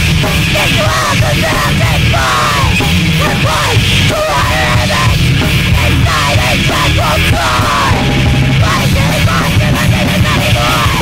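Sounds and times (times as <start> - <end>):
punk rock band playing: 0.0 - 11.0
person singing: 0.4 - 11.0.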